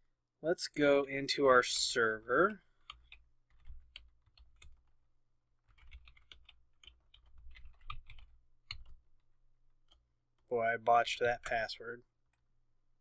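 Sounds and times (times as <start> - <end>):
typing on computer keyboard: 2.8 - 4.9, 5.6 - 9.0.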